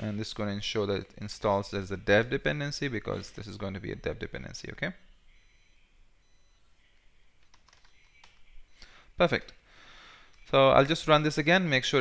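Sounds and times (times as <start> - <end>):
keyboard keystrokes: 7.4 - 8.4.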